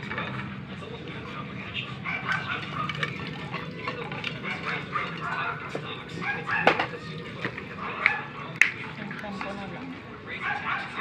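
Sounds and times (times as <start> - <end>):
puppies whining: 1.7 - 8.6.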